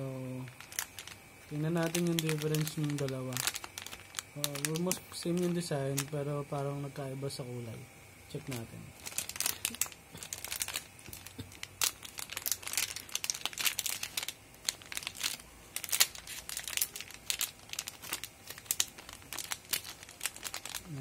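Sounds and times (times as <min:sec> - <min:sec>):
plastic packet crinkling: 0:00.3 - 0:07.0, 0:08.3 - 0:21.0.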